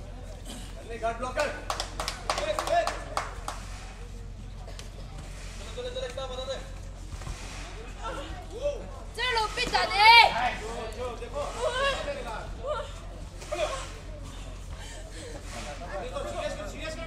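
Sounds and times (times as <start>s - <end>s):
sharp claps or strikes: 1.4s - 3.9s.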